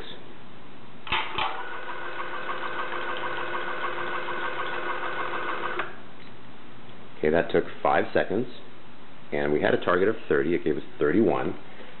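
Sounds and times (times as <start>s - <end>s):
pump motor whine: 1.1s - 6.0s.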